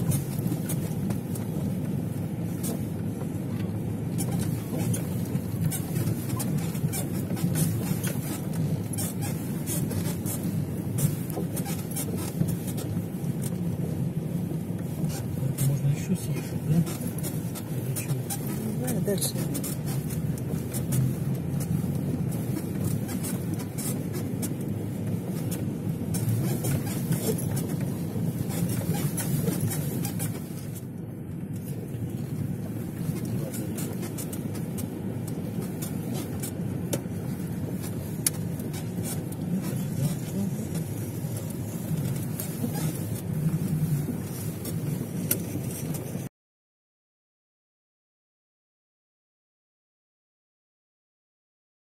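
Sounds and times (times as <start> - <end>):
car engine and tyres rumbling: 0.0 - 46.3.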